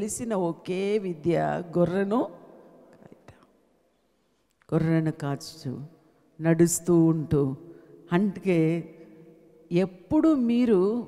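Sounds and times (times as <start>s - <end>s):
woman speaking into a microphone: 0.0s - 2.4s, 4.7s - 9.0s, 9.7s - 11.0s.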